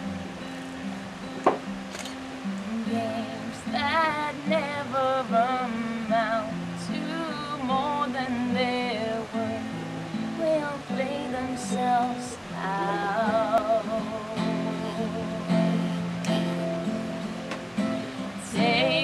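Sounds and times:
strummed acoustic guitar: 0:00.0 - 0:19.0
woman singing a slow ballad: 0:02.4 - 0:17.0, 0:17.8 - 0:19.0.

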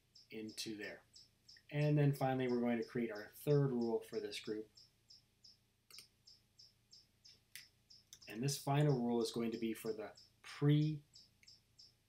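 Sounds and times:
faint high-pitched chirps: 0:00.0 - 0:12.0
mouse click: 0:05.9 - 0:06.4.

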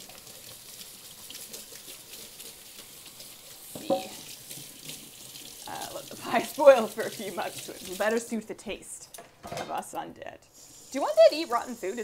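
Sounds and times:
pan washed with splashing: 0:00.0 - 0:08.4, 0:10.6 - 0:12.0
tap running into sink: 0:03.7 - 0:05.0.

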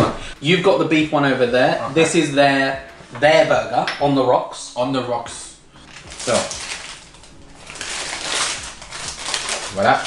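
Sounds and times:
paper wrapping crinkling: 0:05.8 - 0:10.0.

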